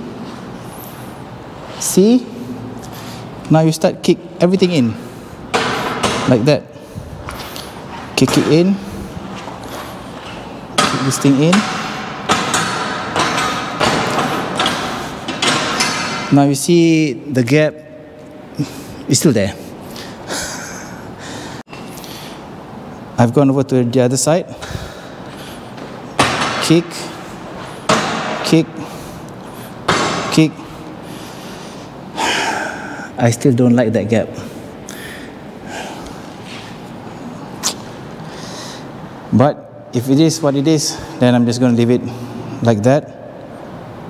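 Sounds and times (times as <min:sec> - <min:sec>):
hard breath: 0:18.5 - 0:22.5, 0:24.5 - 0:25.9, 0:30.6 - 0:33.2, 0:34.4 - 0:36.8, 0:38.2 - 0:39.0.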